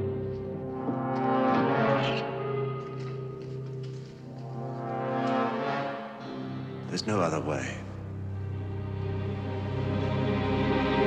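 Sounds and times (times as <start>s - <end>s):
brass sustained chord: 0.0s - 11.0s.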